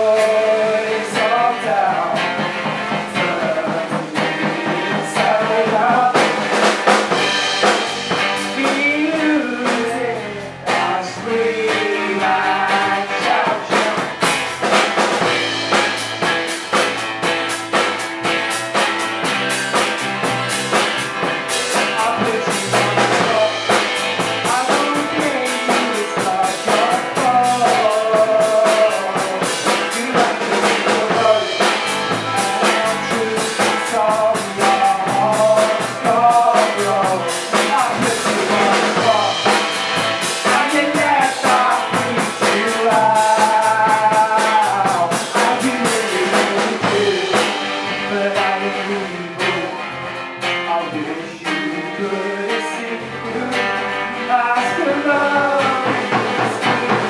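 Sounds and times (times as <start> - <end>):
man singing lead vocal: 0.0 - 17.9, 20.6 - 57.0
drum kit beat: 0.0 - 57.0
electric bass: 0.0 - 57.0
strummed acoustic guitar: 0.0 - 57.0.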